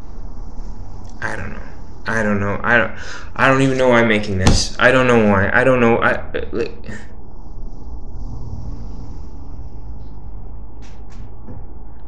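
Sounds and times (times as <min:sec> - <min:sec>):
faint hiss: 0:00.0 - 0:10.0
low background rumble: 0:00.0 - 0:12.0.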